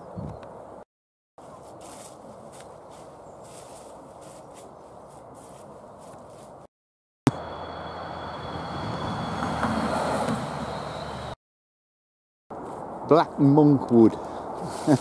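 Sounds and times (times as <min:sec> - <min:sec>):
outdoor background noise: 0:00.0 - 0:00.8, 0:01.4 - 0:06.7, 0:07.3 - 0:11.4, 0:12.5 - 0:15.0
footsteps on dry leaves: 0:01.4 - 0:06.7, 0:12.5 - 0:13.0
van driving past: 0:07.4 - 0:11.4.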